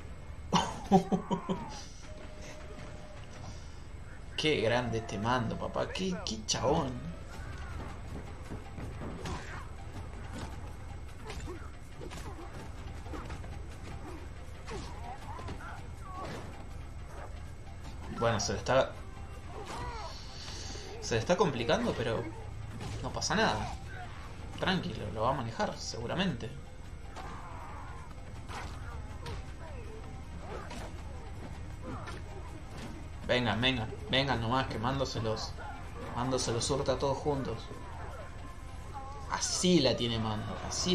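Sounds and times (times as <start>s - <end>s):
background score music: 0.0s - 40.9s.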